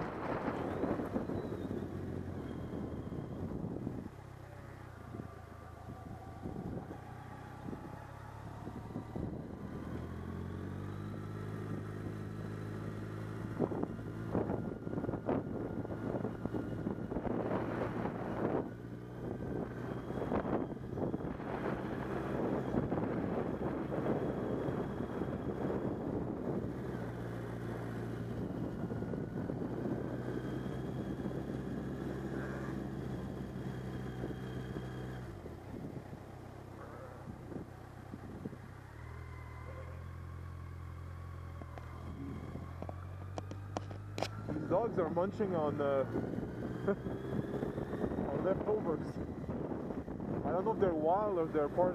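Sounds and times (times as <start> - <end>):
wind buffeting microphone: 0.0 - 4.1, 5.0 - 10.8, 13.4 - 36.2, 37.0 - 38.7, 41.7 - 51.9
motorcycle engine running: 0.0 - 51.9.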